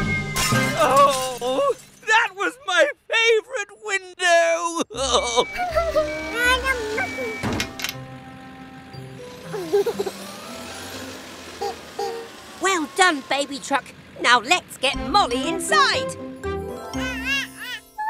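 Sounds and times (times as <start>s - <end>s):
cartoon background music: 0.0s - 1.3s, 4.9s - 11.0s, 14.9s - 18.0s.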